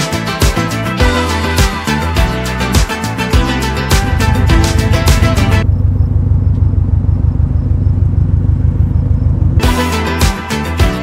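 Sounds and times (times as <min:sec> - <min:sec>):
background music: 0:00.0 - 0:05.6, 0:09.6 - 0:11.0
car engine rumbling: 0:02.6 - 0:10.2.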